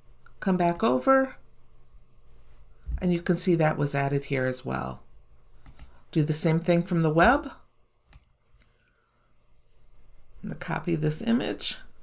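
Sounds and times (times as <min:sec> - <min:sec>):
computer mouse clicks: 0:05.6 - 0:06.0.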